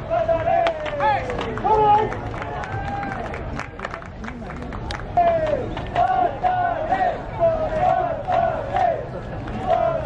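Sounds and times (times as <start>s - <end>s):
voices shouting drawn-out calls: 5.2s - 9.0s.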